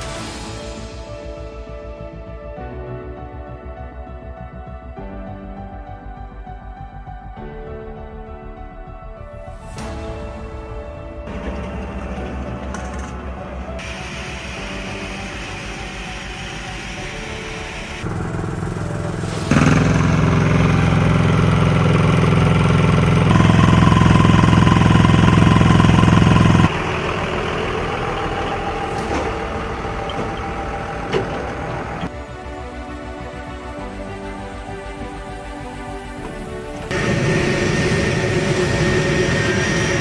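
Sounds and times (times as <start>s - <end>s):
background music: 0.0s - 40.0s
engine drone: 10.8s - 40.0s.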